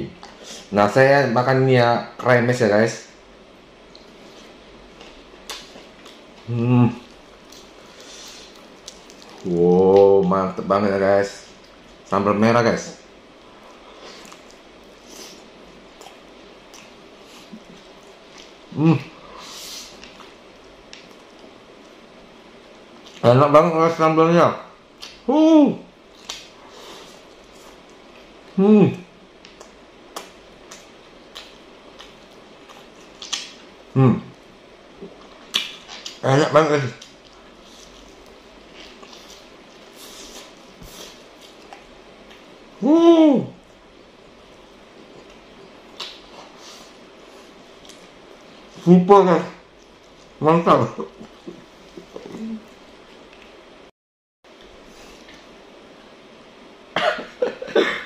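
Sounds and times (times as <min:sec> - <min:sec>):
crunchy chewing: 0:03.9 - 0:10.0, 0:13.7 - 0:18.6, 0:29.4 - 0:33.7, 0:36.9 - 0:42.5
sharp mouth clicks: 0:46.0 - 0:46.3
person coughing: 0:57.0 - 0:58.0.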